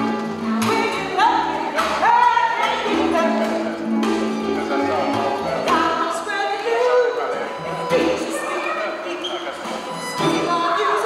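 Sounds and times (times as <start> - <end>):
woman singing: 0.0 - 3.8, 5.7 - 7.2, 10.3 - 11.0.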